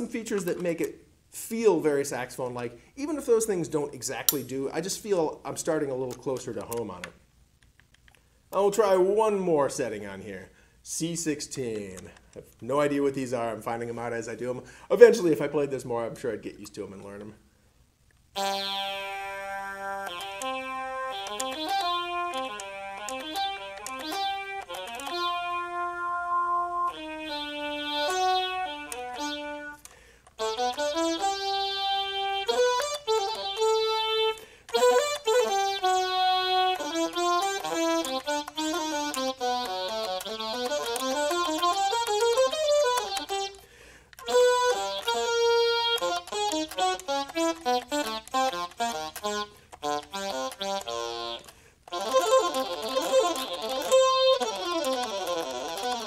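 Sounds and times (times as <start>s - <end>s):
digital saxophone melody: 18.4s - 56.0s.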